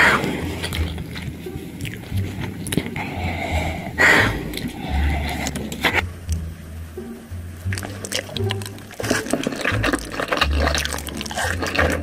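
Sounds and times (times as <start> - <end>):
woman breathing hard: 3.0 - 5.5.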